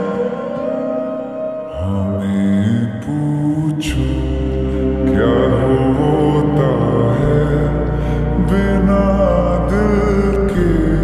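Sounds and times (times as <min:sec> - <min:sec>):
male vocal ballad: 0:00.0 - 0:11.0
sustained chords: 0:00.0 - 0:11.0
low bass: 0:03.9 - 0:11.0.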